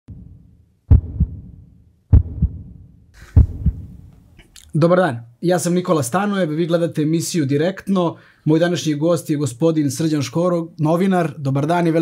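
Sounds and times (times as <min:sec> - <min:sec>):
heartbeat thumps: 0:00.1 - 0:04.1
low hum: 0:00.1 - 0:04.4.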